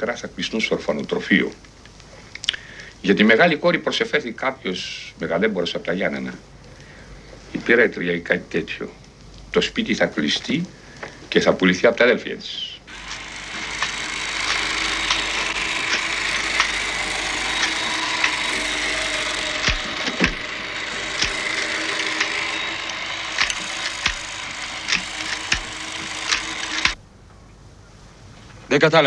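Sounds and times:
rasping scratchy noise with clicks: 0:12.9 - 0:27.0.

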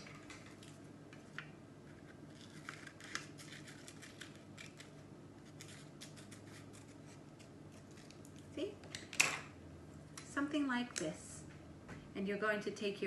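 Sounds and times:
scissors cutting paper: 0:02.3 - 0:08.2.

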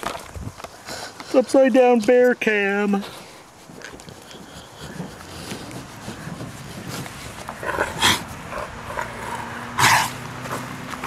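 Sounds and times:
dog huffing: 0:03.0 - 0:10.7.

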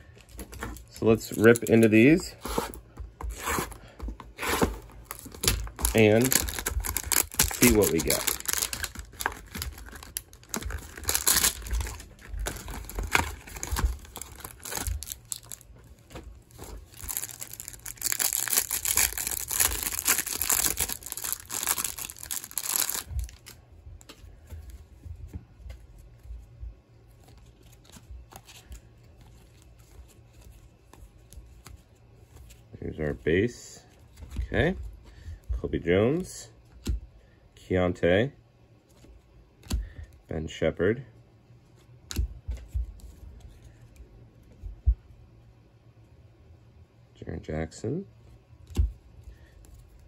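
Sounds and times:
handling of cards: 0:00.0 - 0:35.1
plastic wrap crinkling: 0:04.4 - 0:23.6.

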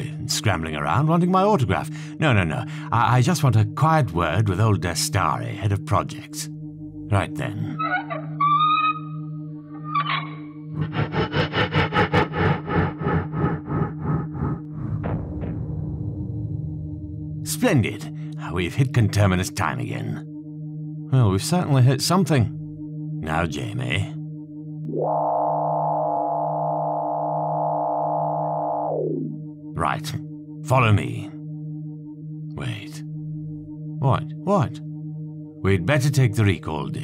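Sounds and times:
constant low hum: 0:00.0 - 0:37.0
electronic pulsing: 0:07.7 - 0:17.5, 0:24.8 - 0:29.8
low console hum: 0:21.1 - 0:36.5
buzzing electronic chord: 0:24.2 - 0:30.7.

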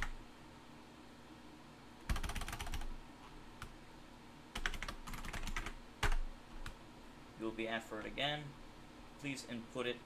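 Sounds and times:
typing on computer keyboard: 0:02.1 - 0:02.9, 0:04.6 - 0:06.8.

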